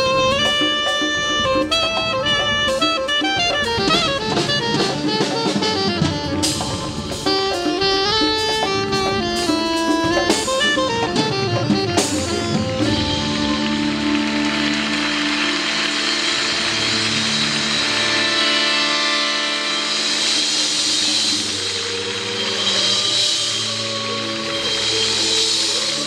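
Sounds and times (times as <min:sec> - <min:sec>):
live band sustained chords: 0:00.0 - 0:26.0
high-pitched noise wash: 0:13.0 - 0:26.0.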